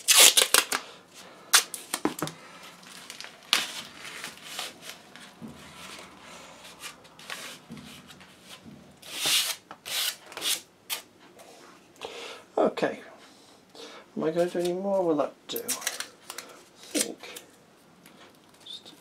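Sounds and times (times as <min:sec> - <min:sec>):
masking tape ripping: 0:00.0 - 0:00.9, 0:01.5 - 0:05.2, 0:08.6 - 0:11.1, 0:16.9 - 0:17.4
tapping and rustling: 0:01.8 - 0:10.4.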